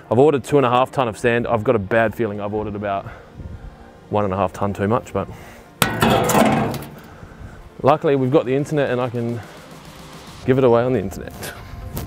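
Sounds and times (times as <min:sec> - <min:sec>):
shovel knocking in wheelbarrow: 0:05.8 - 0:07.1.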